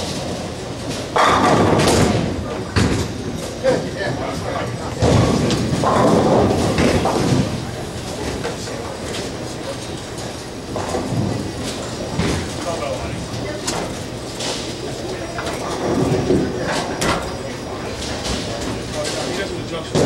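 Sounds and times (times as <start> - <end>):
bowling balls rolling: 0.1 - 19.3.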